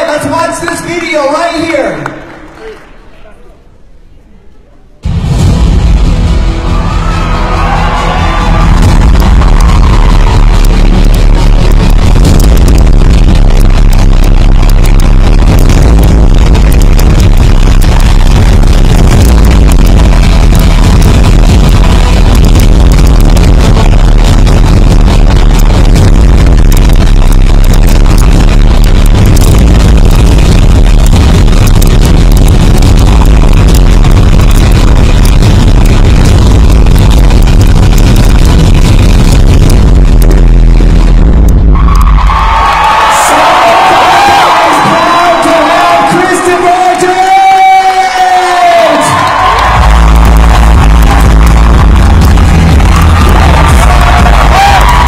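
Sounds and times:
loud music with heavy bass: 0:00.0 - 0:02.0, 0:05.0 - 0:55.0.

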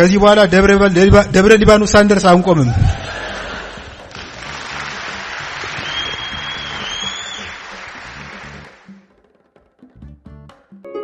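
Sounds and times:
background music: 0:00.0 - 0:11.0
audience applauding: 0:04.0 - 0:09.0
high whistle: 0:05.8 - 0:07.6.

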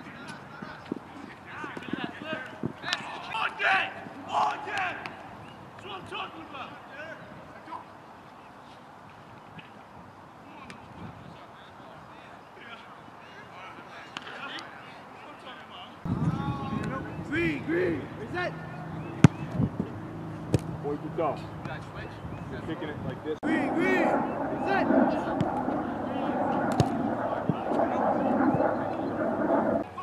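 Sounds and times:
men talking and calling out: 0:00.0 - 0:08.0, 0:10.4 - 0:30.0
indistinct voices: 0:23.4 - 0:30.0.

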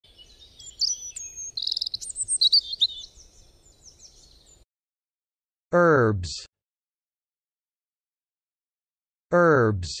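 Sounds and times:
birdsong chirps and trills: 0:00.0 - 0:04.6.

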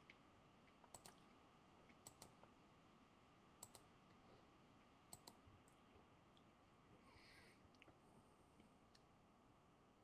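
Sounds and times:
faint sharp clicks in pairs: 0:00.0 - 0:01.2, 0:01.9 - 0:02.5, 0:03.6 - 0:03.9, 0:05.1 - 0:05.8.

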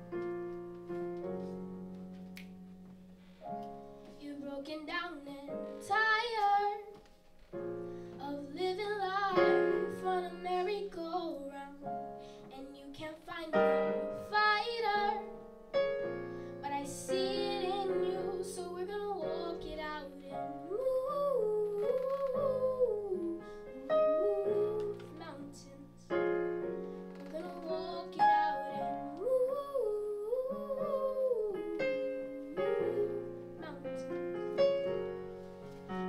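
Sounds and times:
sustained piano chords: 0:00.0 - 0:36.0
girl singing into microphone: 0:04.0 - 0:07.1, 0:08.1 - 0:15.3, 0:16.6 - 0:26.2, 0:27.2 - 0:34.2.

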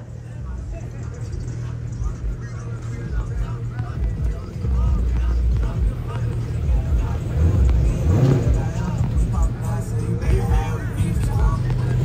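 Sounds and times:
voices: 0:00.0 - 0:12.0
car engine at high revs: 0:02.8 - 0:12.0.

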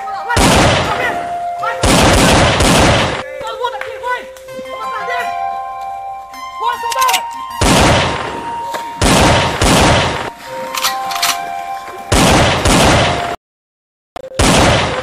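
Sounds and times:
background music with held tones: 0:00.0 - 0:01.9, 0:03.2 - 0:12.2
gunfire bursts: 0:00.4 - 0:01.2, 0:01.8 - 0:03.2, 0:07.6 - 0:08.4, 0:09.0 - 0:10.3, 0:12.1 - 0:13.4, 0:14.4 - 0:15.0.

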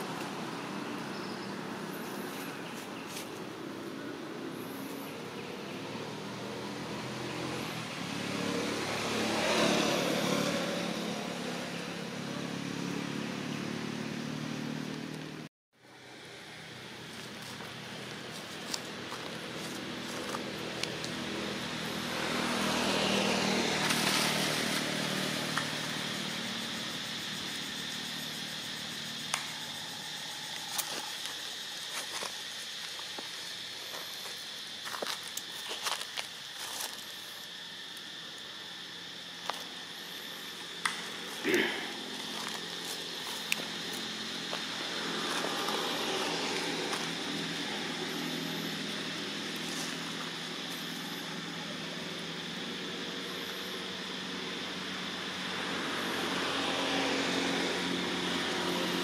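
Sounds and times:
motor vehicle passing: 0:04.0 - 0:31.9, 0:37.3 - 0:59.0
steady high hum: 0:15.8 - 0:59.0.

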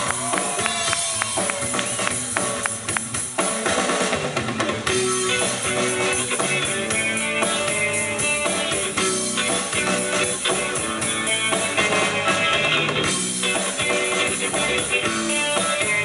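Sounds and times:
bass guitar: 0:00.0 - 0:16.0
drum kit: 0:00.0 - 0:16.0
electric guitar: 0:00.0 - 0:16.0.

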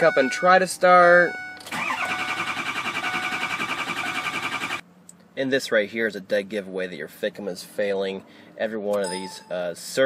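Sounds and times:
diesel engine cranking: 0:01.4 - 0:04.8
starter motor whine: 0:01.6 - 0:04.8.

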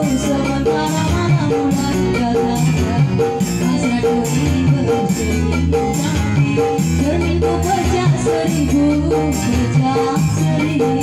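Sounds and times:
keyboard melody: 0:00.0 - 0:11.0.

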